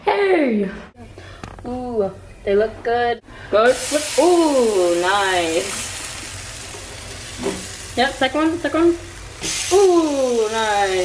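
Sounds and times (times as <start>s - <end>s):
pancakes sizzling in a frying pan: 3.7s - 11.0s.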